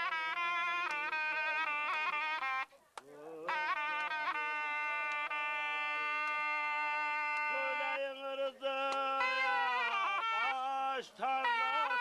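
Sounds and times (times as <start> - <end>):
zurna playing reedy folk melody: 0.0 - 12.0.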